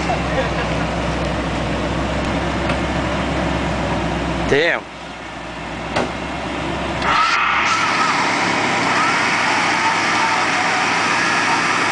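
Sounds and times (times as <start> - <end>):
engine running: 0.0 - 11.9
wavering whine: 7.0 - 11.9.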